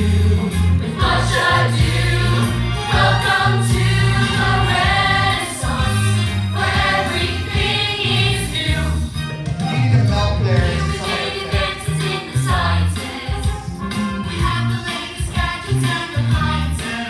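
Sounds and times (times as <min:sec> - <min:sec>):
ensemble choral singing: 0:00.0 - 0:09.2, 0:10.6 - 0:17.0
strong bass accompaniment: 0:00.0 - 0:16.8.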